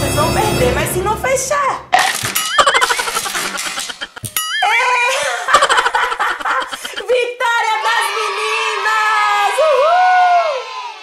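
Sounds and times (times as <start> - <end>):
music: 0.0 - 1.9
giggling and laughter: 2.5 - 7.3
crowd cheering: 6.6 - 11.0.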